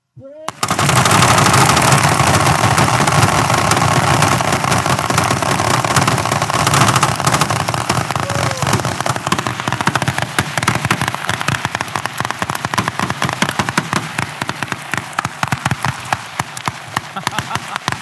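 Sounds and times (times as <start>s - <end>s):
rapid rifle gunfire: 0.5s - 18.0s.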